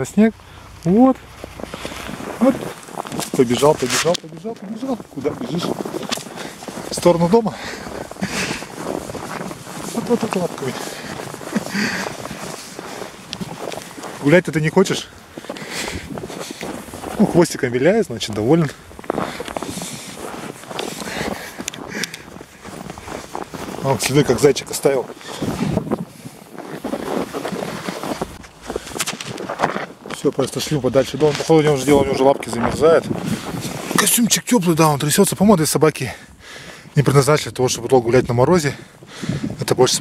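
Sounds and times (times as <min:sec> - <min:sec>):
footsteps crunching in snow: 0:00.0 - 0:40.0
wind noise on microphone: 0:15.2 - 0:17.2, 0:25.0 - 0:30.1, 0:31.7 - 0:34.0, 0:38.0 - 0:40.0.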